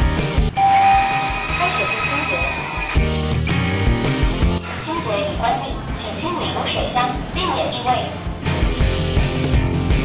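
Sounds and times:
background music with a beat: 0:00.0 - 0:04.6, 0:08.2 - 0:10.0
electronic beep: 0:00.6 - 0:03.0.

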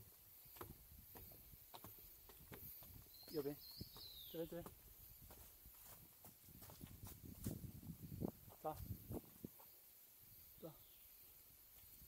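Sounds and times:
footsteps on a dirt trail: 0:00.0 - 0:09.8.

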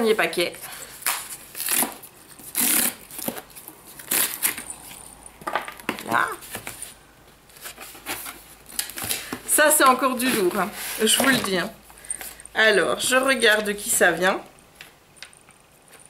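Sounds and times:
cardboard tearing and scraping: 0:01.0 - 0:04.7.

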